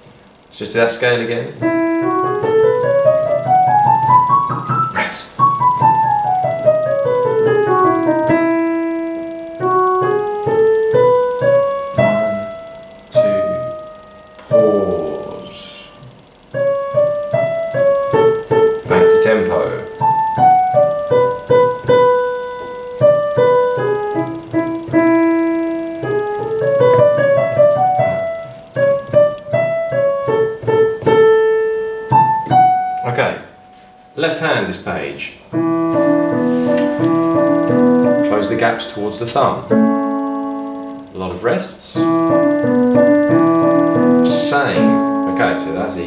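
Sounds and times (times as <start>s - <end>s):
digital piano played slowly: 0.0s - 46.0s.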